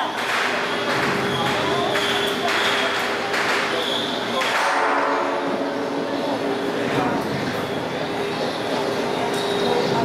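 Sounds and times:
crowd talking in a hall: 0.0 - 10.0.

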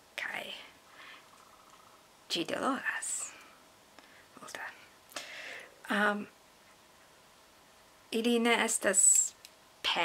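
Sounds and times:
woman whispering softly: 2.7 - 3.6, 4.4 - 4.9.

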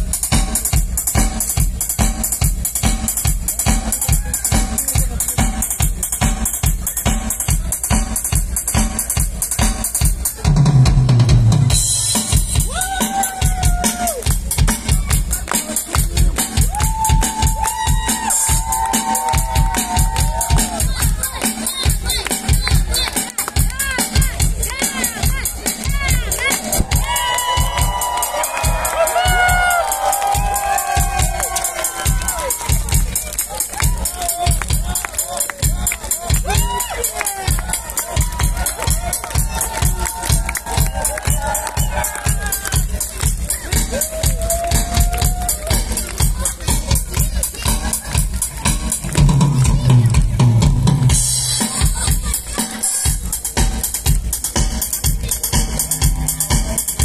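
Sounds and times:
drum beat with cymbals: 0.0 - 57.0
live rock band playing: 0.0 - 57.0
bass line: 22.0 - 52.6.

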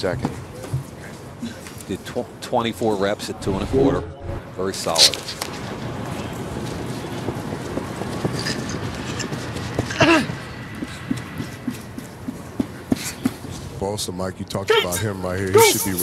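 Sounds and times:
hollow stadium ambience: 0.0 - 16.0
person shouting: 14.7 - 16.0.

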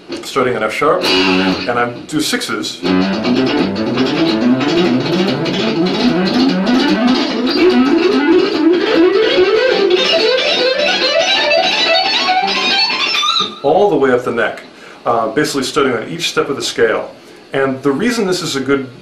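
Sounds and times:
electric guitar fast scale lick: 1.0 - 1.8, 2.8 - 13.6.

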